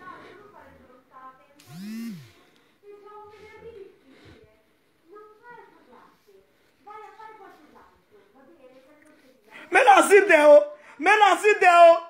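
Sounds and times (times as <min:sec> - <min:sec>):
brief whir rising and falling: 0:01.6 - 0:02.4.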